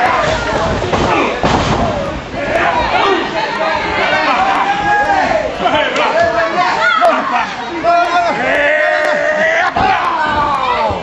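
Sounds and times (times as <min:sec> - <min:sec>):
crowd voices and shouts: 0:00.0 - 0:11.0.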